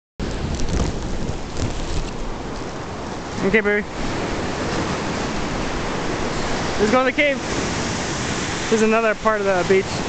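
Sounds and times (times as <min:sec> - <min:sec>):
microphone handling bumps: 0:00.2 - 0:02.3
ocean surf rushing: 0:00.2 - 0:10.0.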